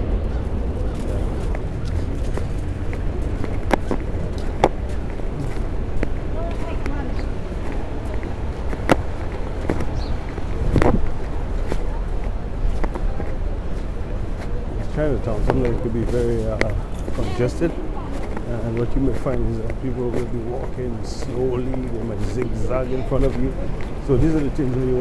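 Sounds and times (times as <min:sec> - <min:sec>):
faint voices of passersby: 0:00.0 - 0:25.0
low traffic rumble: 0:00.0 - 0:25.0.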